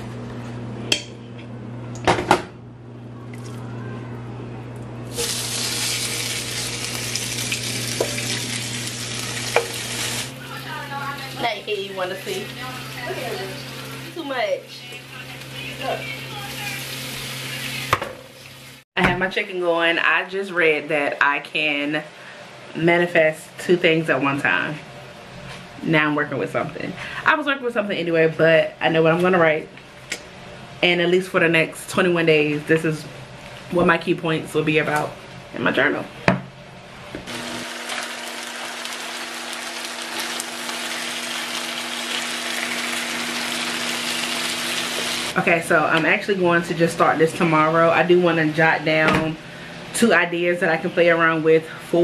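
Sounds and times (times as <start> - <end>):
chicken sizzling in frying pan: 5.1 - 10.7, 37.3 - 45.4.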